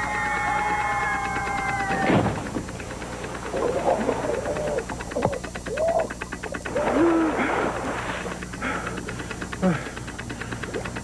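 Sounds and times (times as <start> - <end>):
man crying out in distress: 0.0 - 2.1
low steady hum: 0.0 - 11.0.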